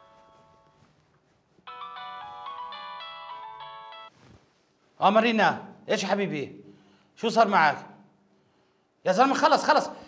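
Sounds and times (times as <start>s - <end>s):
phone ringtone melody: 0.0s - 0.9s, 1.7s - 4.2s.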